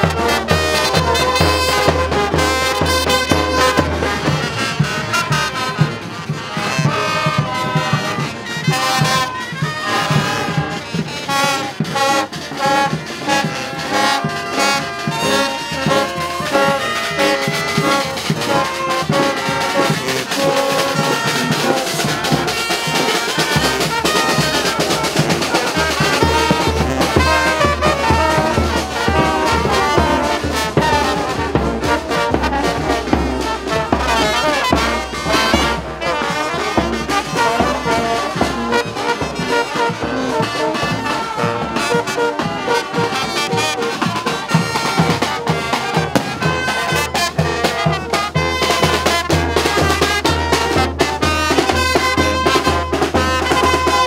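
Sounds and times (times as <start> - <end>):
bass drum and snare drums: 0.0 - 54.0
marching brass band: 0.0 - 54.0.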